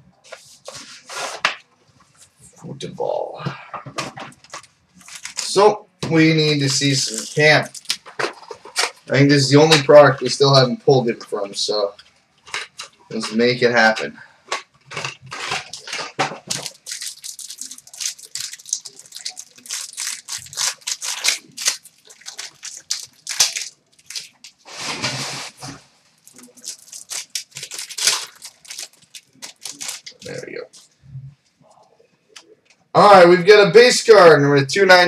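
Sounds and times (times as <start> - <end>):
wrapper and cardboard ripping: 4.4 - 9.9, 14.5 - 30.5.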